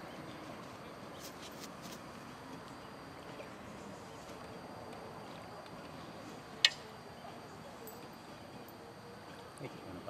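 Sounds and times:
low steady background noise: 0.0s - 10.0s.

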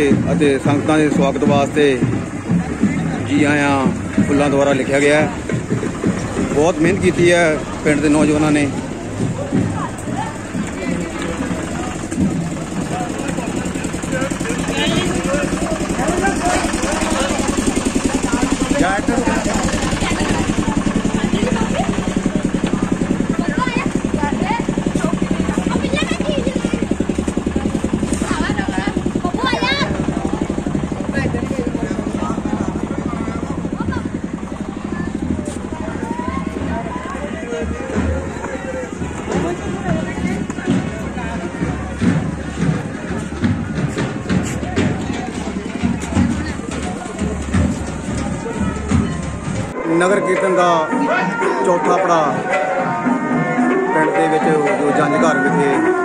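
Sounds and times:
small engine running: 0.0s - 49.8s
people's voices: 0.0s - 56.0s.

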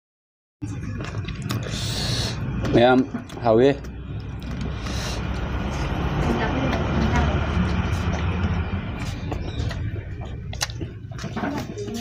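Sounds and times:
motor vehicle passing rumble: 0.6s - 12.0s.

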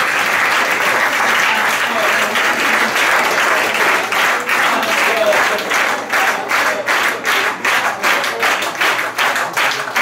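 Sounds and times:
audience clapping in rhythm: 0.0s - 10.0s.

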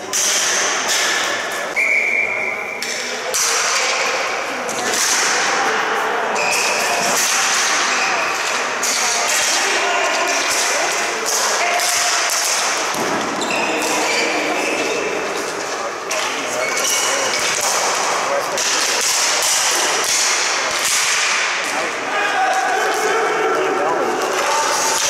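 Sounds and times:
hockey sticks clacking: 0.0s - 25.0s
players shouting: 3.3s - 25.0s.

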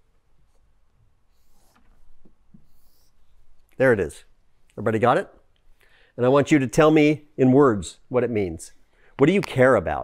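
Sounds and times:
marker drawing on whiteboard: 0.4s - 3.8s.

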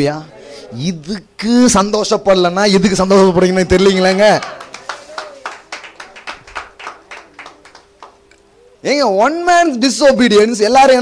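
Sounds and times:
faint steady hum: 0.0s - 11.0s
sharp taps or claps: 4.4s - 8.3s.

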